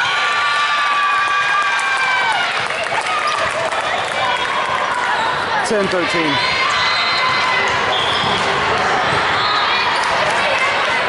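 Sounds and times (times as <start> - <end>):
players' voices echoing: 4.7 - 6.6
sneakers squeaking: 6.1 - 10.3.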